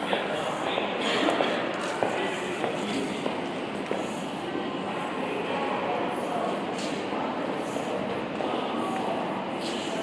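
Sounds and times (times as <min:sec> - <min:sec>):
station ticket hall hum: 0:00.0 - 0:10.0.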